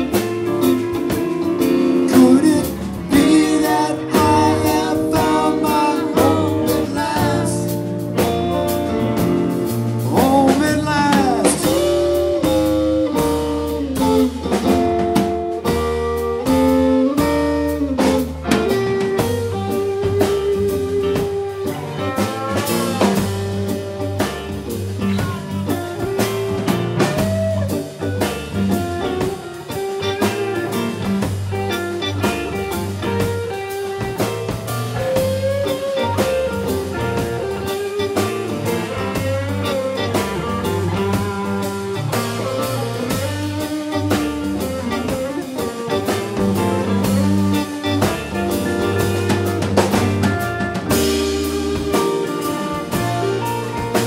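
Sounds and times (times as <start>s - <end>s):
drum kit: 0.0s - 54.0s
electric guitar lead: 0.0s - 54.0s
keyboard: 0.0s - 54.0s
rhythm guitar: 0.0s - 54.0s.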